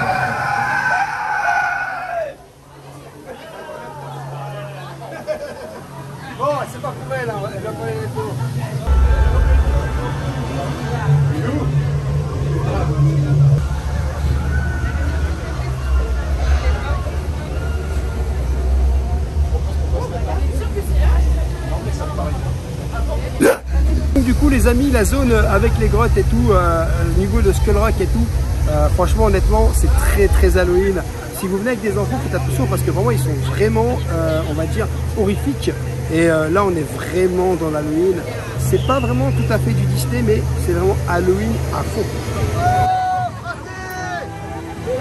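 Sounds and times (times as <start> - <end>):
person shrieking: 0.0 - 2.3
crowd voices: 0.0 - 45.0
wind rumble: 8.8 - 20.4, 23.8 - 34.1
man's voice: 24.2 - 42.1.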